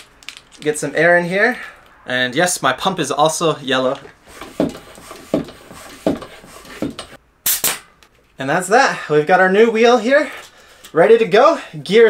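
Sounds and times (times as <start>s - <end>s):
bicycle pump strokes: 4.2s - 7.2s.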